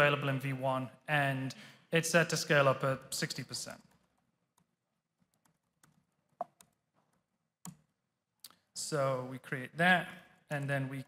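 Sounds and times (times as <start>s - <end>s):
faint keyboard typing: 3.8s - 8.6s.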